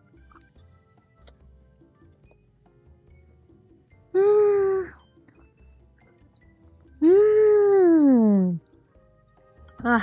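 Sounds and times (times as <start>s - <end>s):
woman humming mmm while chewing: 7.0s - 8.8s.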